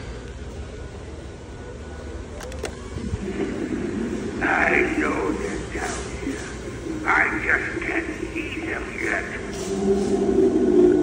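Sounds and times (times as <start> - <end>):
quick clicks: 2.4 - 2.8.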